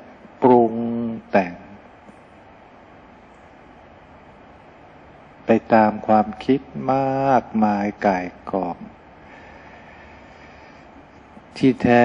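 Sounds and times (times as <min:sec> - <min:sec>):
faint hiss and hum: 0:00.0 - 0:12.0.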